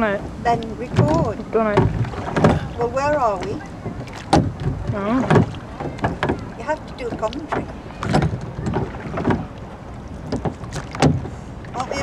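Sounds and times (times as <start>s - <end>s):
oars knocking and splashing: 0.0s - 12.0s
wind rumble on microphone: 0.0s - 12.0s.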